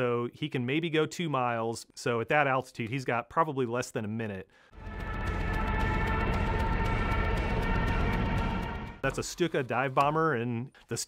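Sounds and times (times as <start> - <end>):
low rumble: 4.8 - 9.1
high drone: 4.8 - 9.2.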